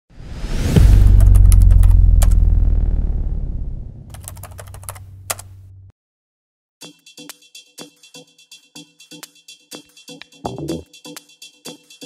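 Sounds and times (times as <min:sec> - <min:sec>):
low rumble: 0:00.2 - 0:05.9.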